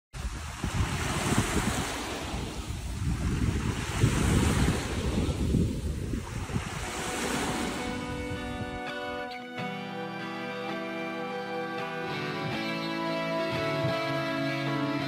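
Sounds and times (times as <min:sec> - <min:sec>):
waves washing onto pebbles: 0:00.2 - 0:08.2
wind buffeting microphone: 0:00.2 - 0:09.0
music: 0:07.1 - 0:15.0.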